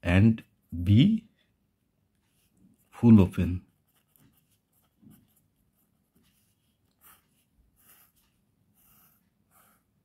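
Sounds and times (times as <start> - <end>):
pen scratching on paper: 3.6 - 10.0.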